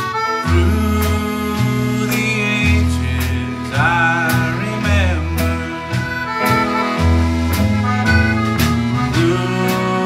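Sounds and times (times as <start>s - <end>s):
accordion: 0.0s - 10.0s
electric guitar: 0.0s - 10.0s
fiddle: 0.0s - 10.0s
light drums: 0.0s - 10.0s
low bass notes: 0.0s - 10.0s.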